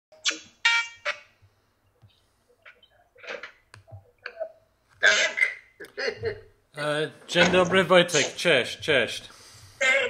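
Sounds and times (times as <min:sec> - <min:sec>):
man talking over video call: 0:06.8 - 0:09.4.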